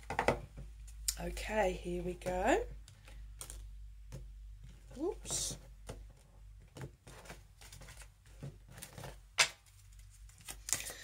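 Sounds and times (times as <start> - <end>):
cards clicking and tapping: 2.8 - 4.8.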